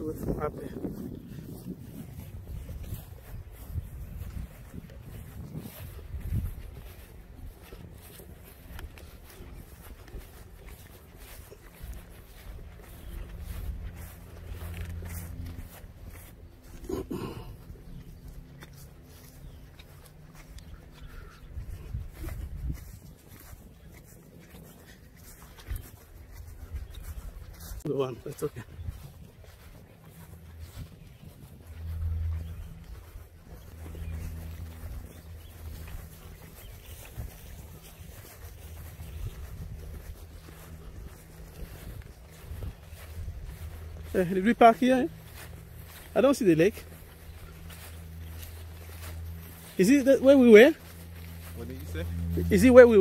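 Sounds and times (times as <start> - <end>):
wind rumbling on microphone: 0.0 - 44.2.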